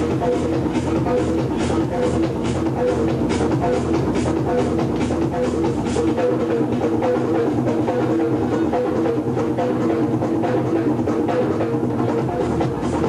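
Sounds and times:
techno dance music: 0.0 - 13.0.

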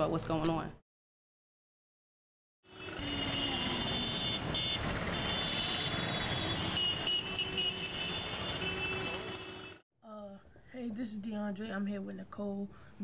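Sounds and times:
street traffic noise: 2.6 - 9.8.

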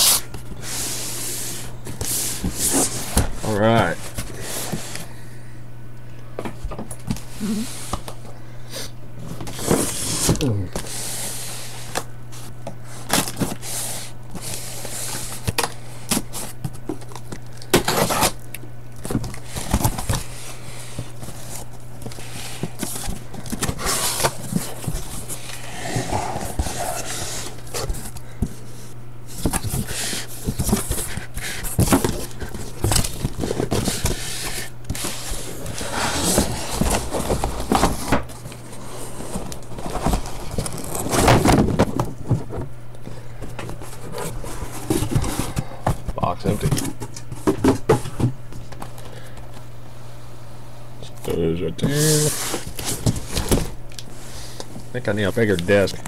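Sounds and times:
steady low hum: 0.0 - 56.0
cardboard flaps scraping and crackling: 1.8 - 5.0, 19.0 - 42.8, 43.4 - 48.9, 51.8 - 53.8
cardboard boxes knocking and rustling: 29.3 - 42.8, 43.4 - 48.8.

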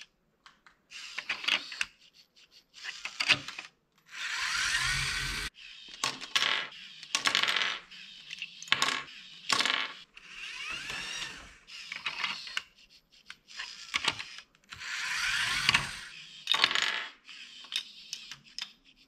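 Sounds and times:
plastic parts clicking and clacking: 0.0 - 2.0, 2.8 - 4.1, 5.9 - 14.9, 15.6 - 19.0
small electric motors whining: 0.9 - 6.1, 6.7 - 19.0.

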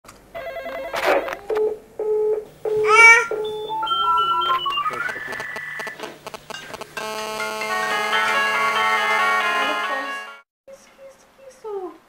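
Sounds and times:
warbling electronic tone: 3.5 - 9.3.

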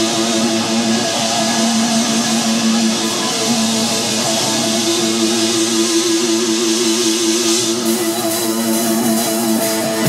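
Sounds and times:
distorted electric guitars: 0.0 - 10.0.

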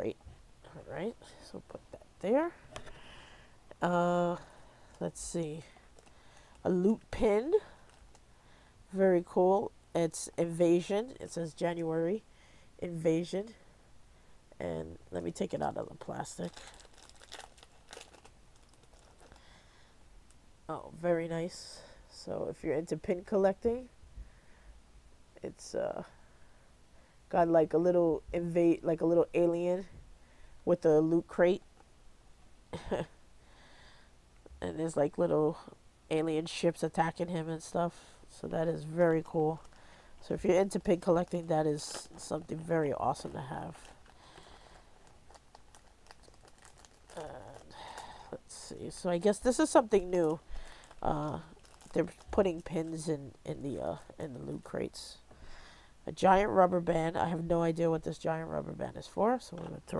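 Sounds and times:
plastic sleeve crinkling: 15.7 - 19.6, 38.8 - 54.8.

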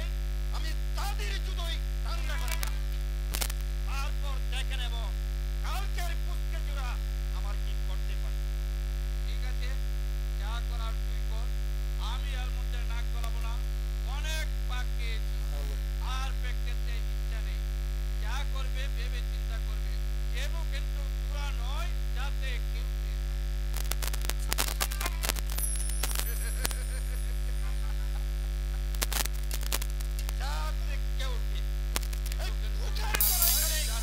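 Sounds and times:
electrical mains hum: 22.0 - 34.0.

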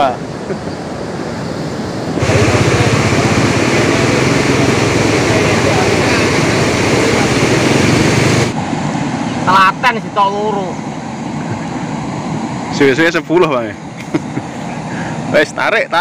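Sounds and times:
water pouring through sluice gates: 2.2 - 8.5.

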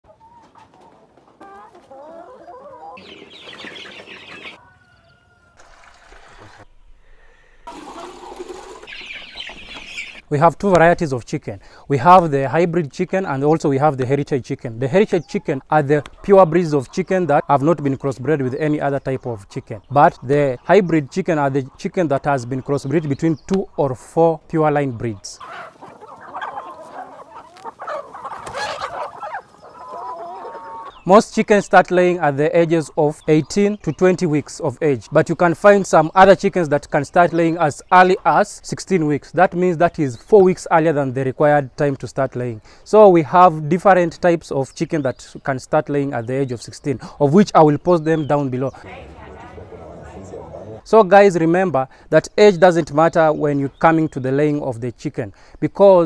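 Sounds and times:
chickens clucking: 0.0 - 6.7, 7.7 - 10.9, 12.1 - 42.8, 44.8 - 51.9.

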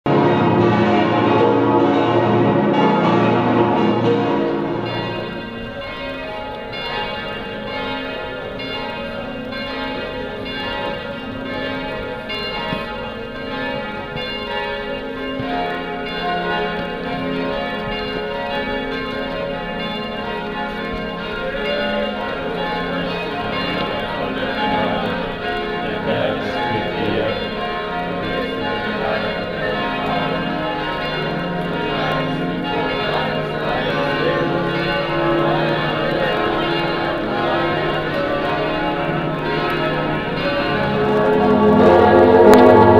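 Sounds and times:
church bells pealing: 0.1 - 42.9.

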